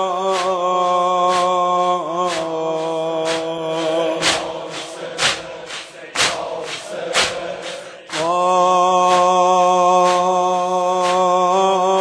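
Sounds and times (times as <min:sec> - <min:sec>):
person chanting: 0:00.0 - 0:12.0
steady beats: 0:00.0 - 0:12.0.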